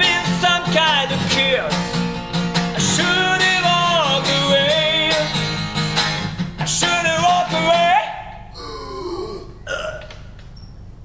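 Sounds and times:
man wordless vocal sounds: 0:06.7 - 0:10.1.

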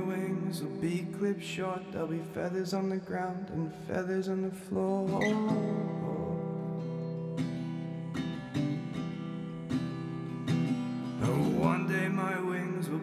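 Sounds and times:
acoustic guitar strumming chords: 0:00.0 - 0:13.0.

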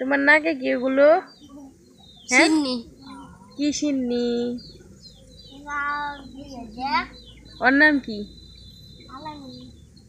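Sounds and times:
small birds chirping: 0:00.0 - 0:10.0
child saying yeah: 0:09.1 - 0:09.7.

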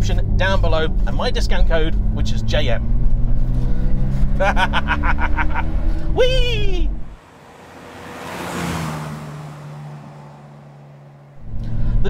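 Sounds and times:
car driving past: 0:01.8 - 0:06.2, 0:06.9 - 0:12.0.

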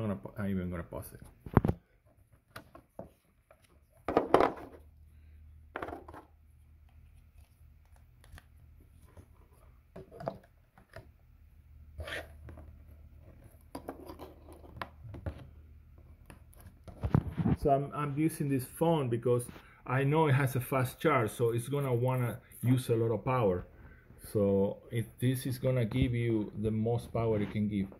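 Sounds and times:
cables handled on a table: 0:01.2 - 0:04.9, 0:05.7 - 0:11.1, 0:12.0 - 0:17.6.

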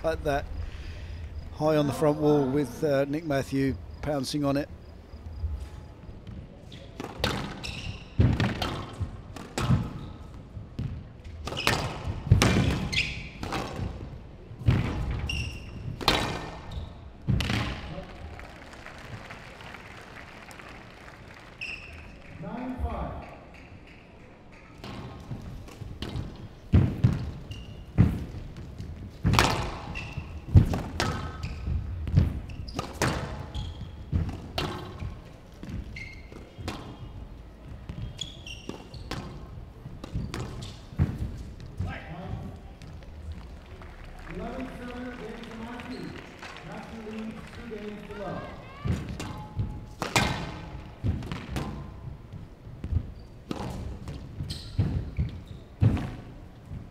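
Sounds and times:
shoes squeaking on wooden floor: 0:05.2 - 0:13.9, 0:14.8 - 0:17.6, 0:23.5 - 0:43.7, 0:48.1 - 0:56.9
squash ball hits: 0:07.0 - 0:10.1, 0:10.8 - 0:18.1, 0:24.8 - 0:37.2, 0:37.8 - 0:43.0, 0:48.4 - 0:52.2, 0:52.8 - 0:56.9.

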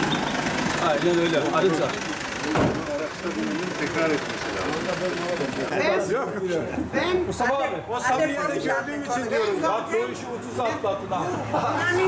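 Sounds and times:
minibus engine idling: 0:00.0 - 0:06.0
people talking: 0:00.8 - 0:12.0
sharp thump: 0:02.5 - 0:02.9.

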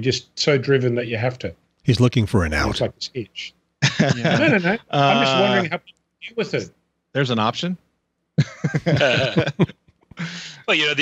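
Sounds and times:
man's vocal sounds: 0:01.9 - 0:02.9.

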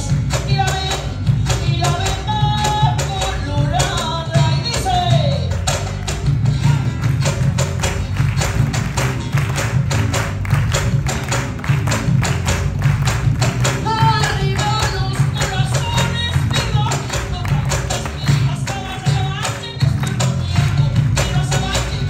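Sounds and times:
person singing: 0:00.0 - 0:05.8, 0:13.7 - 0:22.0
live band playing: 0:00.0 - 0:22.0
percussion rhythm: 0:00.0 - 0:22.0.

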